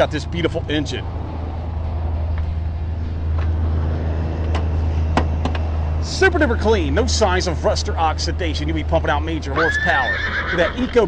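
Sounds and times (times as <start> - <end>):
truck engine idling: 0.0 - 10.3.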